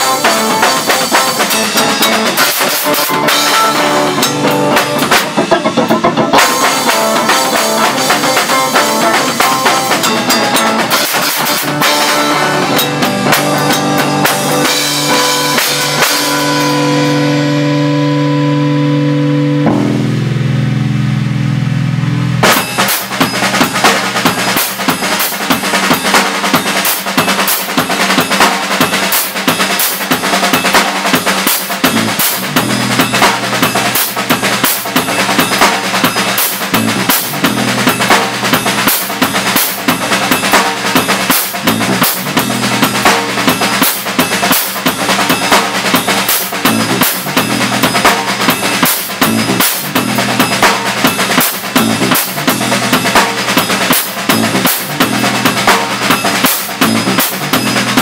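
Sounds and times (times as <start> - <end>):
bass guitar sustained notes: 0.0 - 24.6, 31.8 - 43.8, 46.6 - 58.0
drum solo: 0.0 - 58.0.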